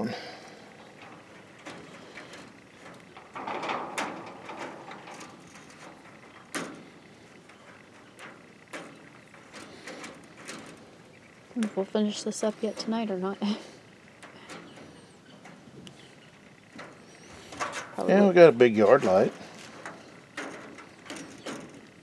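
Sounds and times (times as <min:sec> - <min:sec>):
wire mesh rustling: 0:00.0 - 0:22.0
wire clicking on metal: 0:19.3 - 0:22.0.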